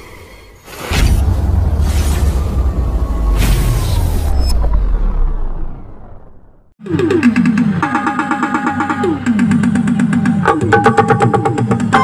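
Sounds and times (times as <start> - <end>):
electronic keyboard music: 6.8 - 12.0.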